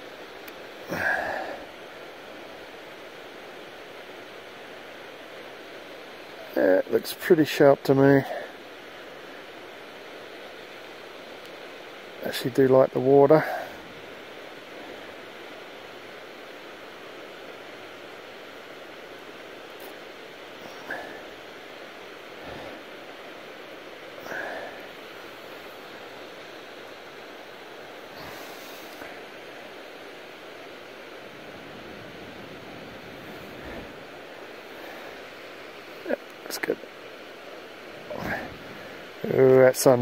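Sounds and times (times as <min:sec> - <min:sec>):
creek water rushing: 0:00.0 - 0:40.0.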